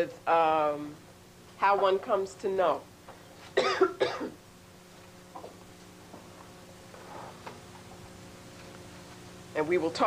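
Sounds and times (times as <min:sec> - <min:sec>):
woman coughing: 0:03.6 - 0:04.4.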